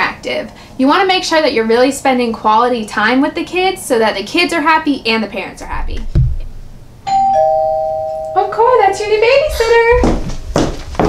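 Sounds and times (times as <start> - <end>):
low thump: 6.1 - 6.5
two-tone doorbell chime: 7.1 - 9.0.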